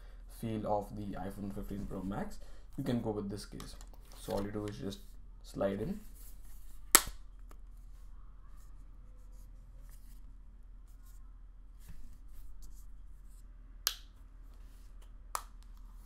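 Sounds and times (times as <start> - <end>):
faint rubbing and handling: 1.1 - 3.0, 3.9 - 6.9, 7.6 - 13.6, 14.4 - 15.1.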